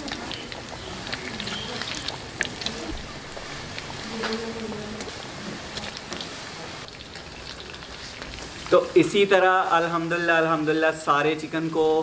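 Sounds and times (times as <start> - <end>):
oil crackling and popping: 0.0 - 10.4
chicken deep-frying in oil: 0.0 - 12.0.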